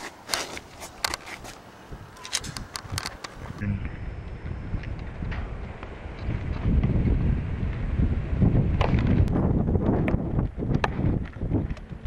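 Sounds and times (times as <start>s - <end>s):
wind buffeting microphone: 1.8s - 12.0s.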